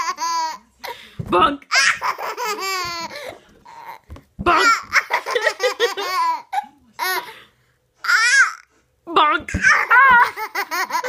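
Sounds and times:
toddler laughing: 1.7s - 7.2s.

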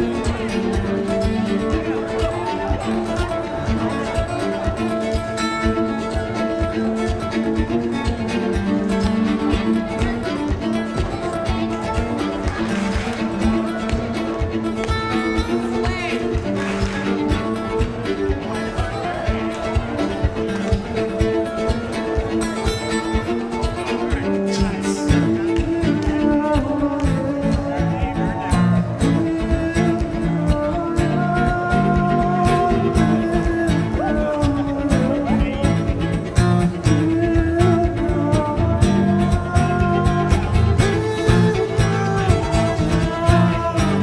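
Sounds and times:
fiddle and guitar dance music: 0.0s - 44.0s.

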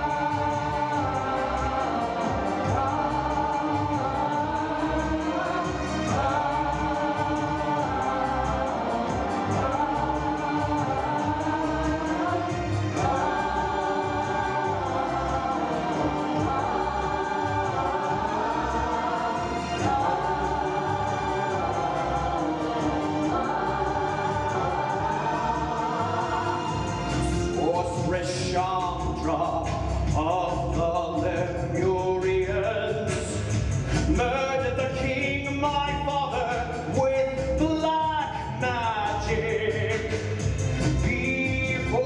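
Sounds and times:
instrumental accompaniment: 0.0s - 42.0s
opera voices singing: 0.0s - 42.0s.

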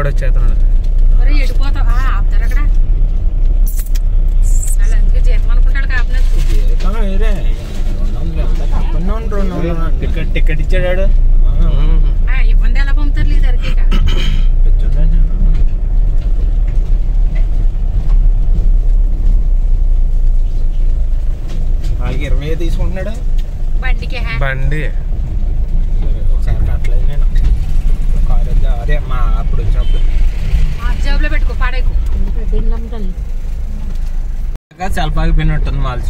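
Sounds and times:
car driving on rough road: 0.0s - 36.0s.

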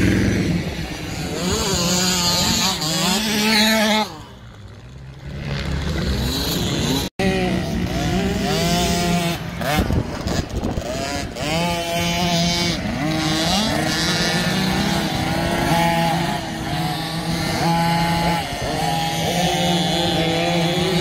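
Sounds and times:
motocross bike engine revving: 0.0s - 21.0s.

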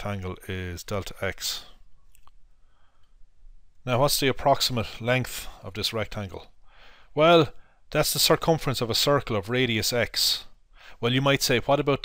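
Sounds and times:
person speaking: 0.0s - 2.4s, 3.8s - 12.0s.

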